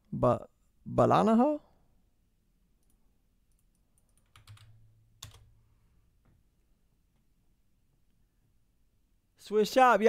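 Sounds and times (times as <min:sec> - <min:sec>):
computer keyboard clicks: 0:02.8 - 0:05.5.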